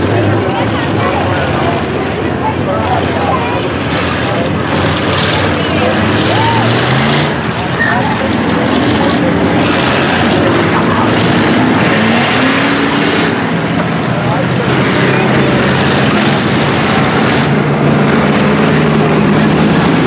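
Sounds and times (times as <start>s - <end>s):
race car engines: 0.0s - 20.0s.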